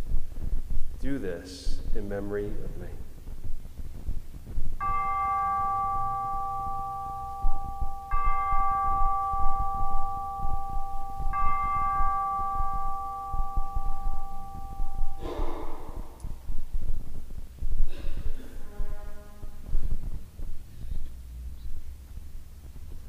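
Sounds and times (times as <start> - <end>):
bell ringing: 4.8 - 16.4.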